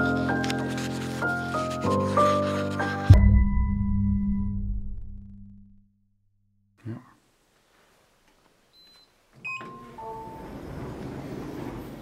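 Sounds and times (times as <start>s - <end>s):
elevator chime: 9.4s - 10.9s
elevator doors rumbling: 9.6s - 12.0s.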